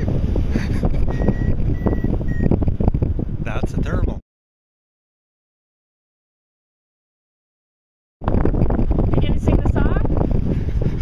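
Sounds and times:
wind buffeting microphone: 0.0 - 4.2, 8.2 - 11.0
variometer short beeps: 1.1 - 2.6.

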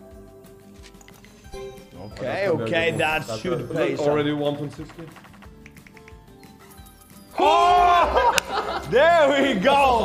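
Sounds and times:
sharp click: 5.0 - 6.2.

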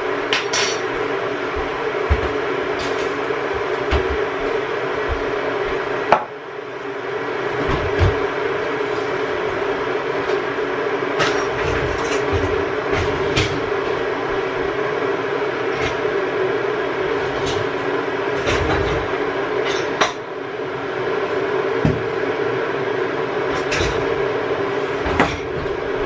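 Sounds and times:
electric kettle heating water: 0.0 - 26.0.

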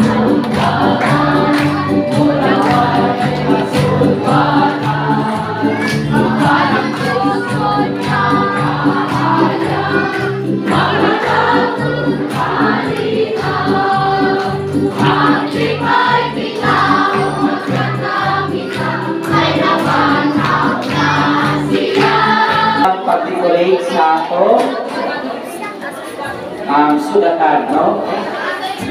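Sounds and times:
congregation singing a hymn: 0.0 - 25.3, 26.5 - 28.9.

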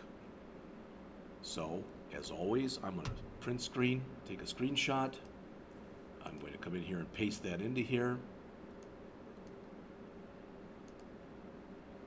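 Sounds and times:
low steady hum: 0.0 - 12.0
computer mouse clicks: 8.7 - 9.6, 10.8 - 11.1.

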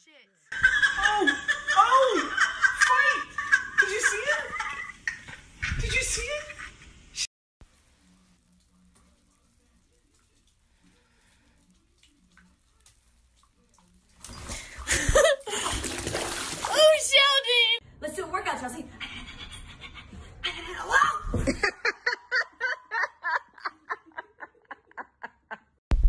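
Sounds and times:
voices and laughter: 0.5 - 6.8
cat splashing in bathwater: 7.8 - 17.0.

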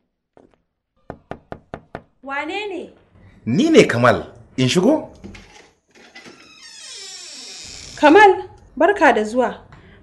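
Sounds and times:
knocking on a door: 1.1 - 2.2.

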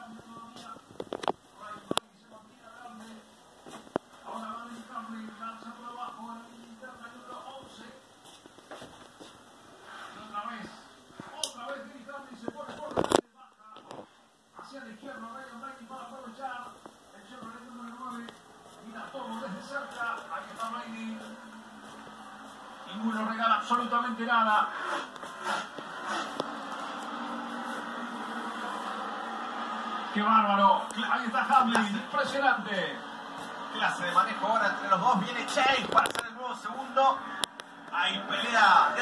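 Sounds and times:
race car engines on television: 0.0 - 39.0.

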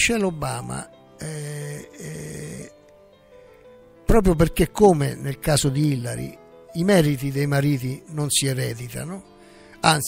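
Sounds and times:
faint background music: 0.0 - 10.0
man saying ehhh: 1.2 - 2.8.

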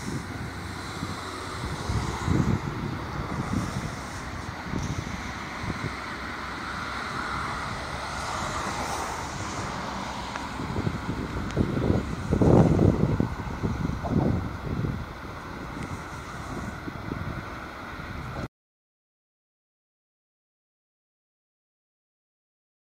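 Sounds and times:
steady background hiss: 0.0 - 18.4
wind buffeting microphone: 0.0 - 18.5.

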